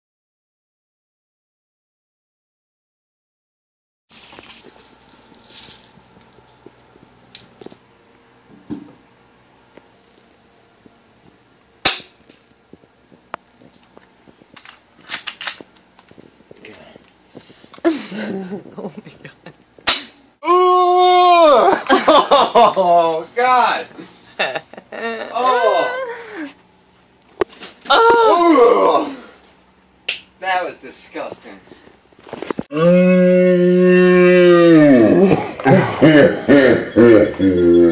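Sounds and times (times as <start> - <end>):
airsoft gun shots: 11.8 - 12.2, 19.8 - 20.2
person humming low mmm: 32.7 - 37.9.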